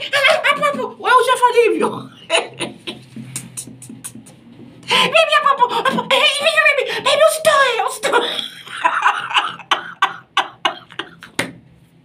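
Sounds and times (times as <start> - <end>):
man laughing: 2.2 - 4.4, 8.2 - 11.4.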